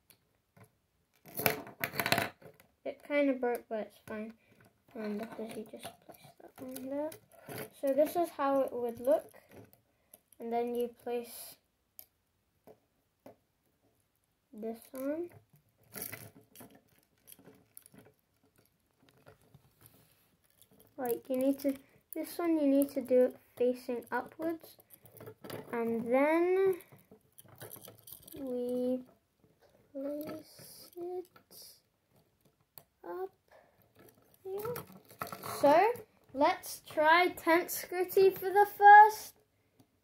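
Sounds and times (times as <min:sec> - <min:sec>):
plastic bricks clicking together: 0:01.1 - 0:02.6
plastic bricks clattering on wood: 0:01.2 - 0:02.6, 0:33.8 - 0:37.4.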